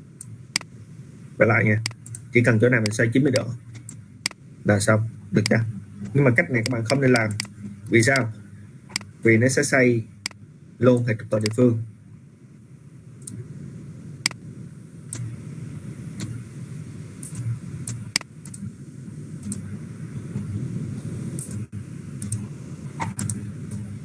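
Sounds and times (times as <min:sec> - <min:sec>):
low background rumble: 0:00.0 - 0:24.0
computer mouse clicks: 0:06.6 - 0:08.3, 0:08.9 - 0:09.1, 0:11.4 - 0:11.6, 0:19.4 - 0:19.6, 0:21.4 - 0:22.4, 0:23.0 - 0:23.8.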